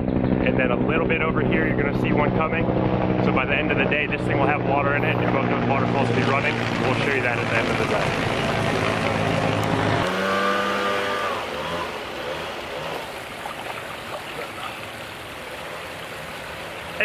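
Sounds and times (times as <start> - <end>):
steady rushing noise: 0.0 - 10.1
engine running: 0.0 - 17.0.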